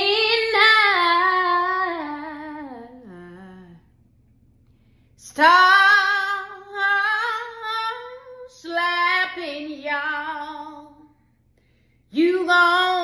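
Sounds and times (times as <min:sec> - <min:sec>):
woman singing unaccompanied: 0:00.0 - 0:03.9, 0:05.2 - 0:11.1, 0:12.1 - 0:13.0.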